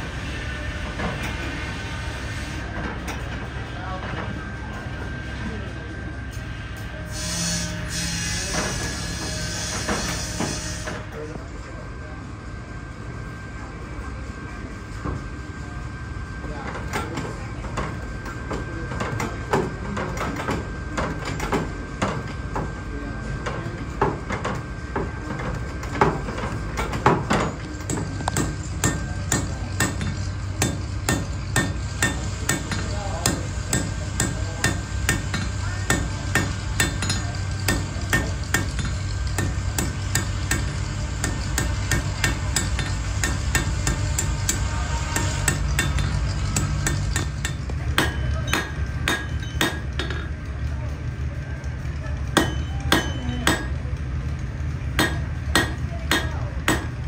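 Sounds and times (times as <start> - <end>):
hammer striking iron on anvil: 26.8 - 50.4, 52.3 - 53.8, 55.0 - 57.0.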